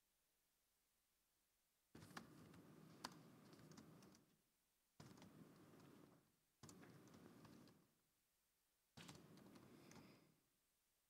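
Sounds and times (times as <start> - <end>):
typing on computer keyboard: 3.0 - 4.3, 5.0 - 6.0.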